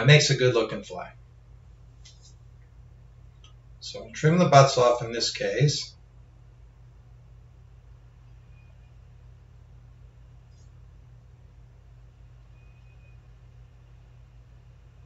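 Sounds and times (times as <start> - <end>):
steady low hum: 0.0 - 15.0
faint click: 3.4 - 3.6.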